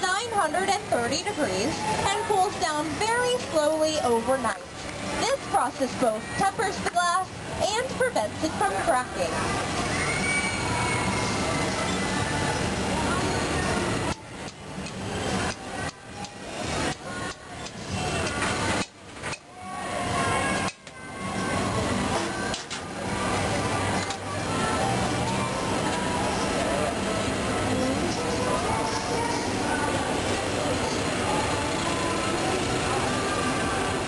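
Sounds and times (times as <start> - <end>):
faint voices: 0.0 - 34.0
furnace roaring with blowers: 0.0 - 34.0
music: 0.0 - 34.0.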